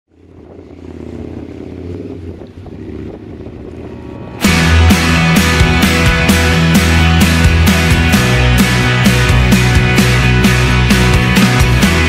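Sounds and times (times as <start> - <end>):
wind: 0.1 - 4.5
boat engine droning: 0.1 - 12.0.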